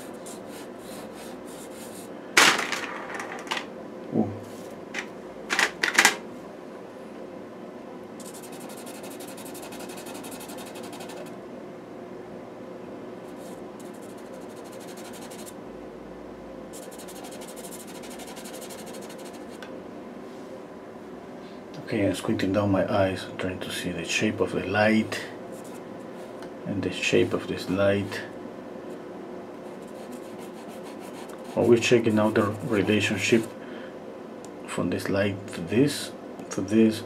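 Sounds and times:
low room hum: 0.0s - 37.0s
pastel pencil scratching paper: 8.2s - 11.3s, 13.3s - 15.6s, 16.8s - 19.6s, 29.6s - 32.8s.

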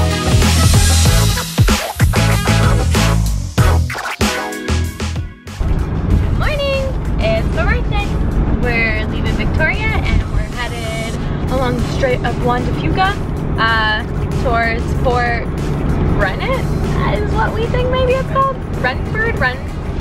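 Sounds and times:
van driving low rumble: 4.7s - 20.0s
woman talking: 6.3s - 15.5s, 16.2s - 19.7s.

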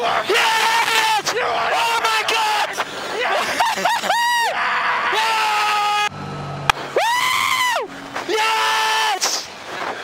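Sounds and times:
man screaming over radio: 0.0s - 3.5s, 4.1s - 6.1s, 7.0s - 9.5s.

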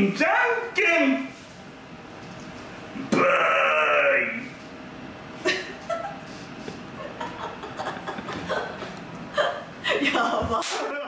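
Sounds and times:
sharp vocal outbursts: 3.1s - 4.5s
people laughing: 5.4s - 11.0s.

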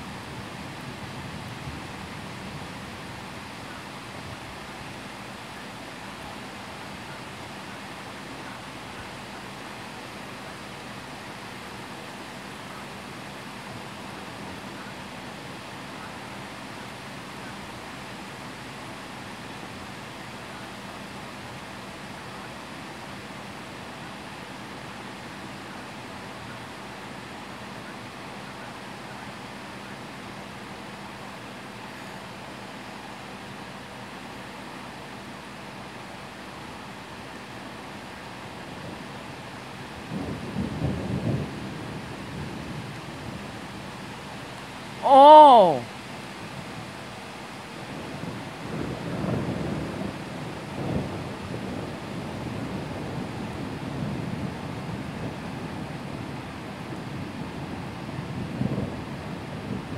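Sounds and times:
heavy rain hissing: 0.0s - 59.9s
thunder rumble: 48.1s - 56.2s.

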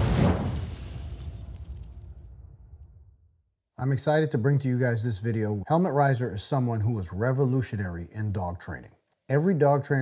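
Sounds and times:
low rumble: 0.0s - 3.3s.

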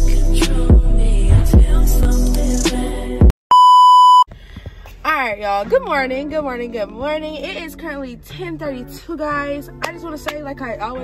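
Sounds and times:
music with a beat: 0.0s - 3.3s
high test-tone beep: 3.5s - 4.3s.

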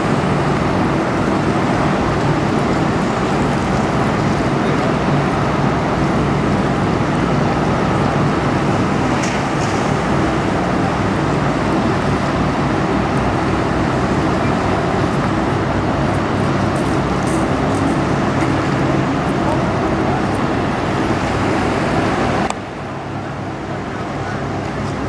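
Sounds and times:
rushing noise: 0.0s - 25.0s
ship engines droning: 0.0s - 25.0s.

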